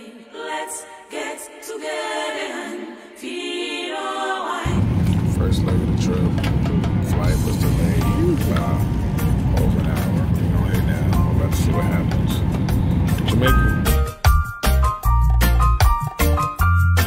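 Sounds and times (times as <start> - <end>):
airliner cabin rumble: 4.7 - 13.8
upbeat music with heavy bass: 7.2 - 17.0.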